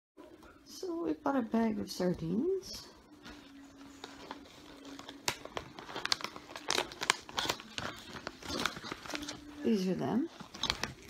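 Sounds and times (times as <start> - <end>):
plastic bag crinkling: 3.3 - 11.0.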